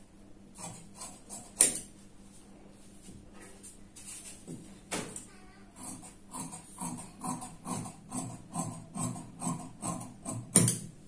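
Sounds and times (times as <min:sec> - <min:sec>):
scissors snipping fabric: 0:00.6 - 0:01.8, 0:05.8 - 0:10.8.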